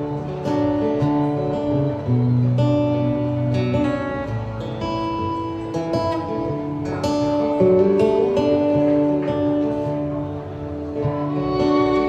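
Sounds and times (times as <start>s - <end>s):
strummed chords: 0.0s - 12.0s
violin bowed long notes: 10.6s - 12.0s.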